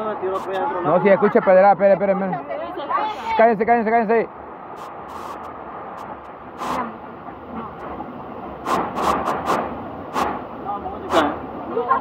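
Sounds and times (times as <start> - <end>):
short sharp noises: 8.6 - 10.5.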